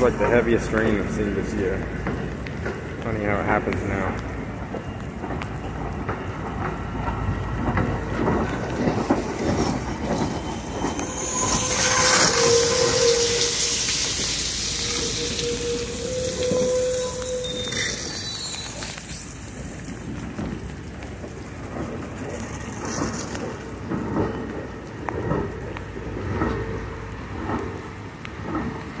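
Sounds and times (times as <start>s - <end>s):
heavy rain: 0.0s - 29.0s
passenger train cars rumbling: 0.0s - 29.0s.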